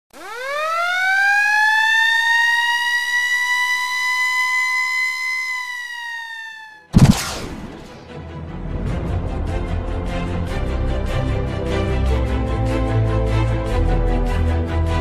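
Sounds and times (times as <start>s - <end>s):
wailing siren-like tone: 0.2s - 8.0s
sudden loud hit: 6.9s - 8.1s.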